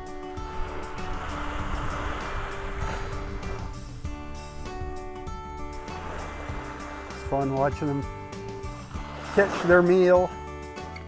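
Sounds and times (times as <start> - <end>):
background music with held notes: 0.0 - 11.0
surf wave washing up beach: 0.4 - 3.9, 5.8 - 8.0, 8.9 - 10.3.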